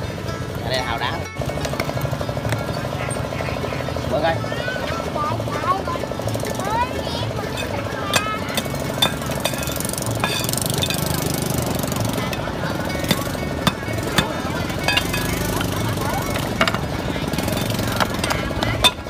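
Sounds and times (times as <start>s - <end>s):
rapidly pulsing drone: 0.2s - 19.0s
cleaver knocking oyster shells: 7.6s - 19.0s.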